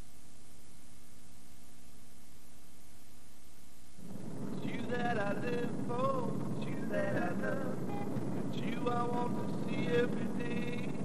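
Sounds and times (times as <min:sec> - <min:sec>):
vehicle engine and road noise: 0:04.0 - 0:11.0
man singing long notes: 0:08.6 - 0:11.0.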